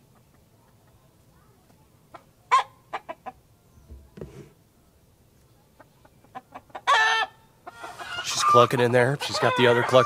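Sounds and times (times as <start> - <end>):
hen clucking: 2.0 - 4.6, 5.6 - 10.0.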